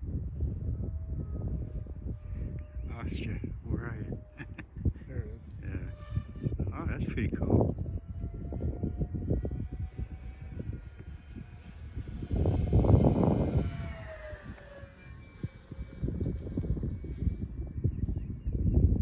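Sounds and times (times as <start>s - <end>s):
wind rumble on microphone: 0.0s - 19.0s
model airplane motor whine: 0.1s - 6.7s, 7.5s - 19.0s.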